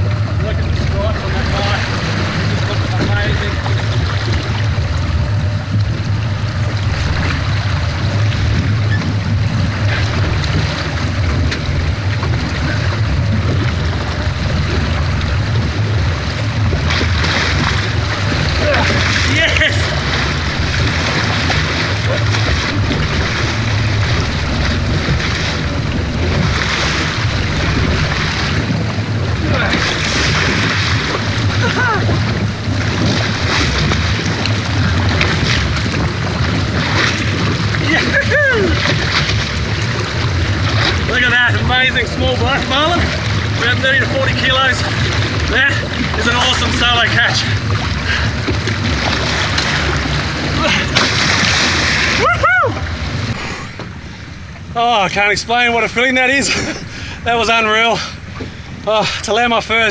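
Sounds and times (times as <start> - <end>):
boat engine idling: 0.0 - 59.9
sea and wind noise: 0.0 - 59.9
water splashing against hull: 0.0 - 59.9.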